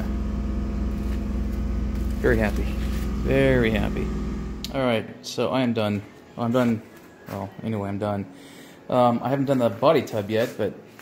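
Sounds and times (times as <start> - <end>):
low machine hum: 0.0 - 5.0.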